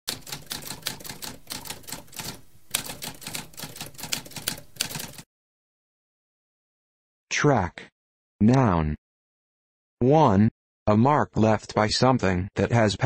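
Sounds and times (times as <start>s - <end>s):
typewriter keys clacking: 0.1s - 5.2s.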